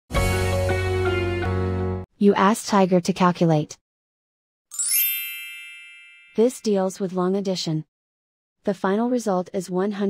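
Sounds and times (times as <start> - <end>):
bright bell-like chime: 4.7 - 6.7.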